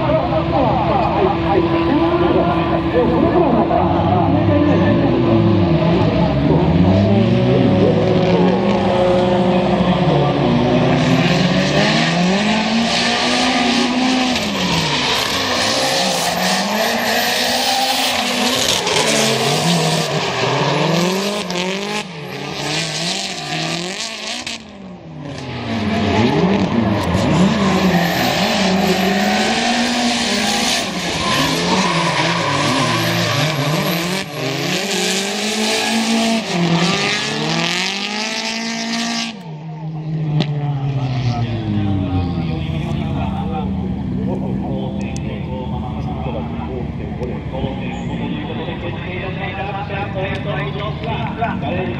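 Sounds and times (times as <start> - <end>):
car engines revving: 0.0 - 51.9
tyres screeching: 25.8 - 36.6.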